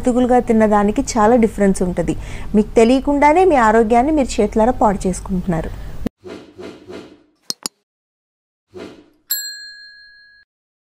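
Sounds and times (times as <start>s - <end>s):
bell ding: 9.3s - 10.5s.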